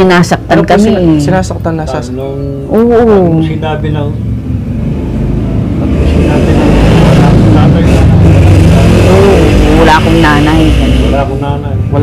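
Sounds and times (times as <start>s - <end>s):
vehicle engine running: 0.3s - 12.0s.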